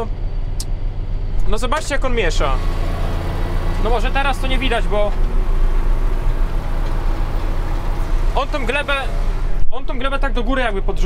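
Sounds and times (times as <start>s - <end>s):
tractor diesel engine droning: 0.0s - 11.0s.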